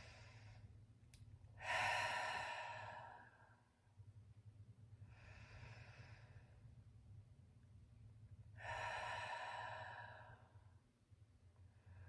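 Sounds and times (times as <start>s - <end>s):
woman breathing deeply: 0.0s - 0.8s, 1.6s - 3.6s, 5.0s - 6.7s, 8.6s - 10.7s.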